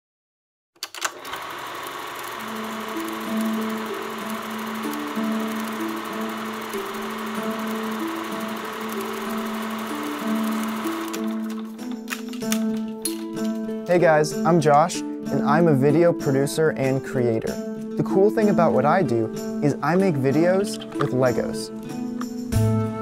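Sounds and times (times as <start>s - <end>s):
film projector clatter: 0.8s - 12.3s
simple melody: 2.0s - 13.5s.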